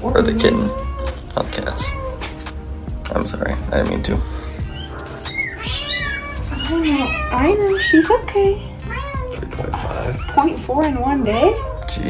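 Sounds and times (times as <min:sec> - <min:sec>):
cat meowing: 0:00.1 - 0:02.4, 0:04.5 - 0:12.0.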